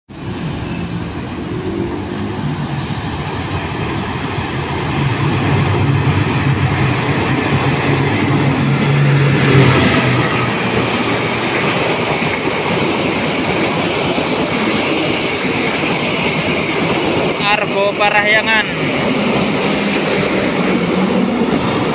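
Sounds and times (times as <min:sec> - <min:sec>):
diesel locomotive engine drone: 0:00.1 - 0:21.9.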